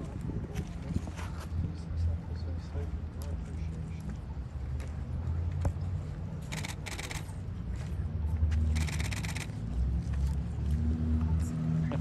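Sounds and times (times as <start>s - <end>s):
vehicle engine idling: 8.8s - 9.6s.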